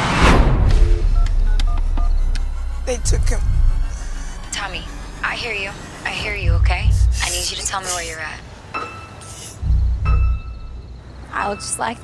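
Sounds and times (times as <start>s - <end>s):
steady low rumble: 0.0s - 8.6s, 9.6s - 11.5s.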